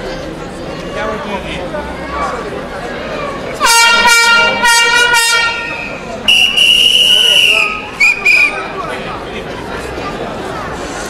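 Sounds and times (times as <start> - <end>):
crowd chatter: 0.0 - 11.0
air horn blasts: 3.6 - 8.2.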